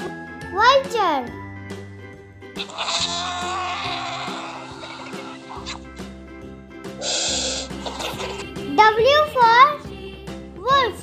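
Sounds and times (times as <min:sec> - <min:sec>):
children's background music: 0:00.0 - 0:11.0
vulture hoarse wavering cry: 0:02.6 - 0:06.0.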